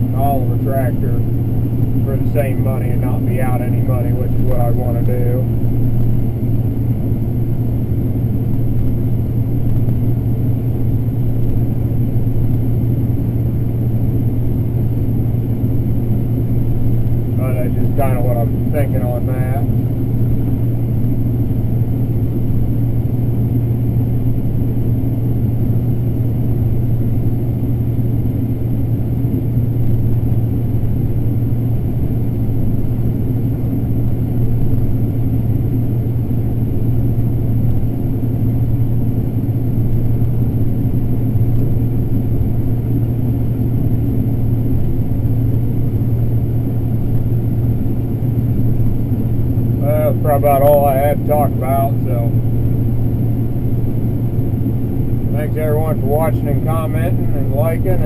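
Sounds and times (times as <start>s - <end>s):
combine harvester engine drone: 0.0s - 58.0s.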